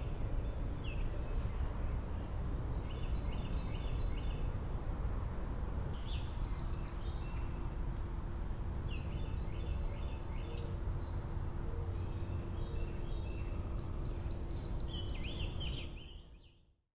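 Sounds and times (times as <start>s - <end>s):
songbirds singing: 0.0s - 4.6s, 5.9s - 7.6s, 8.4s - 16.8s.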